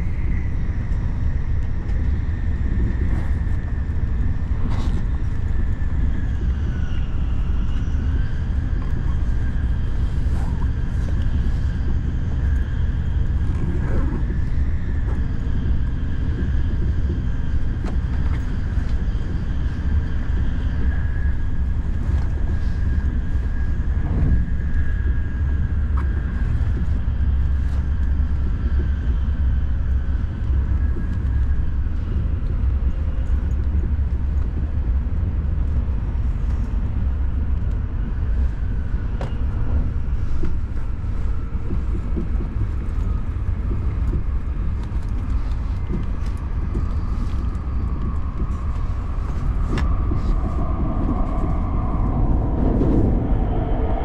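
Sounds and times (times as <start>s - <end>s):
faint high whine: 0.0s - 54.0s
train wheels rumbling on track: 0.0s - 54.0s.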